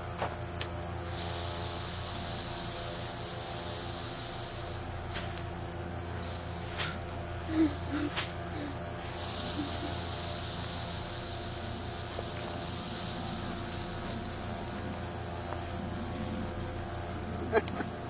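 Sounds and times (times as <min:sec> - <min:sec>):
insects chirring: 0:00.0 - 0:18.0.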